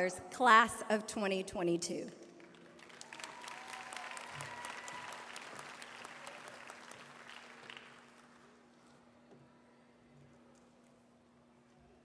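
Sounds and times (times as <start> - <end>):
audience applauding: 2.4 - 8.6.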